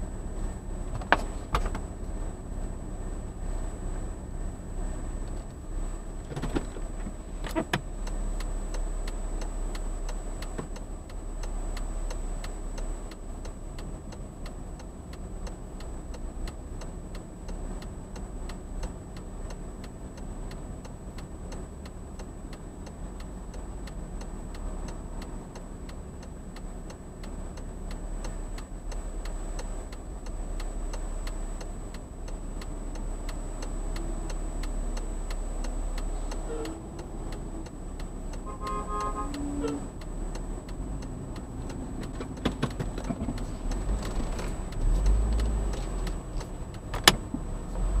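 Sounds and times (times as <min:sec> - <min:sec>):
car idling: 0:00.0 - 0:48.0
steady regular ticking: 0:00.0 - 0:48.0
traffic rumble: 0:00.0 - 0:48.0
sharp click: 0:42.0 - 0:47.4.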